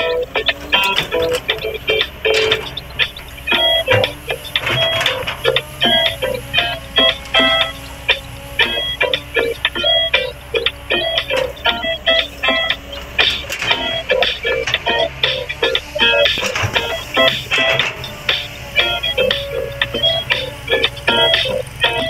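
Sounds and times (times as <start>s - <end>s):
quick bright melody: 0.0s - 22.0s.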